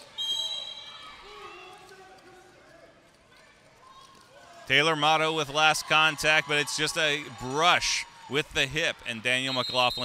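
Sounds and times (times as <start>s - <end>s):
referee's whistle blast: 0.1s - 1.0s, 9.4s - 10.0s.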